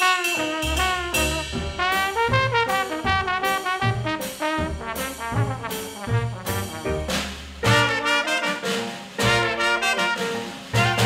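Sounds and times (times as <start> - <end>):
drums: 0.0 - 11.0
trombone: 0.0 - 11.0
trumpet: 0.0 - 11.0
string bass: 0.6 - 8.0, 10.6 - 11.0.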